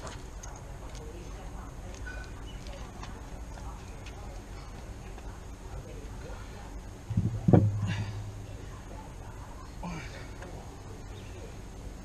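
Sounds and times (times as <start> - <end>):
steady low rumble: 6.8 - 9.4.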